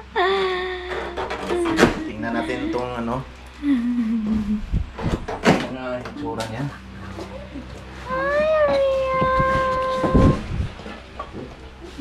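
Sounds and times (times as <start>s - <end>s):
pet crying: 0.2s - 4.5s.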